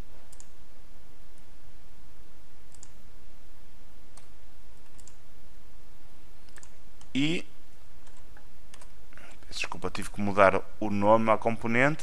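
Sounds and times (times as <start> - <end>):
low hum and hiss: 0.0 - 12.0
computer mouse clicks: 0.3 - 0.6, 2.7 - 3.0, 4.1 - 5.2, 6.4 - 7.2, 8.0 - 9.0.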